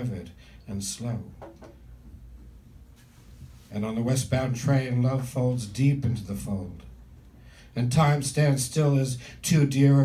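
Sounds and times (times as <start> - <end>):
man reading aloud: 0.0 - 1.3, 3.7 - 6.9, 7.7 - 10.0
low steady hum: 0.0 - 10.0.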